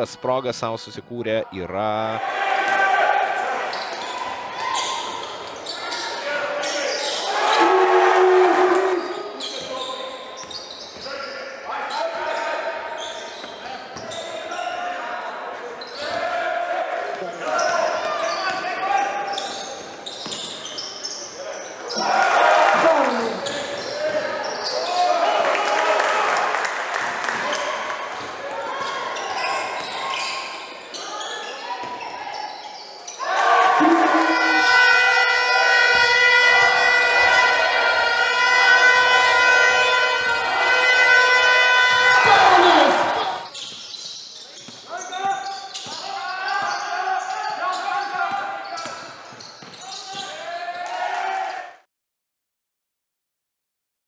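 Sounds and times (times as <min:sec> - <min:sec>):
voices calling out: 0:33.3 - 0:35.5.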